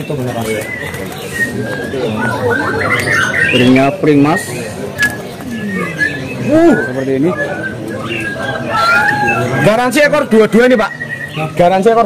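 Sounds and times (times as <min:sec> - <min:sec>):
murmur of men talking: 0:00.0 - 0:12.0
songbirds whistling: 0:00.0 - 0:12.0.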